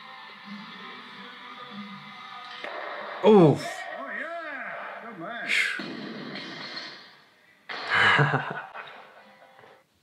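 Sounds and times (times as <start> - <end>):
man laughing: 7.9 - 9.6.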